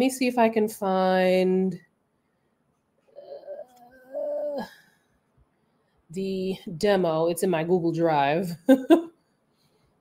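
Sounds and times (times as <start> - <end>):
woman murmuring: 3.1 - 4.8.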